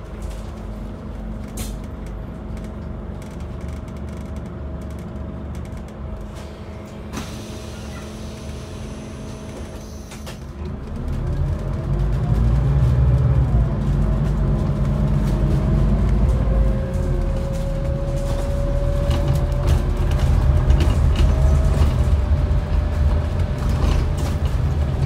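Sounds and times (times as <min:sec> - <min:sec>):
bus accelerating: 0:00.0 - 0:25.0
bus engine idling: 0:00.0 - 0:25.0.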